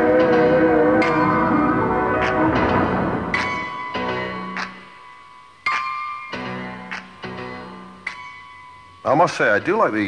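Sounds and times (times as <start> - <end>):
band music with electric keyboard: 0.0 - 4.9.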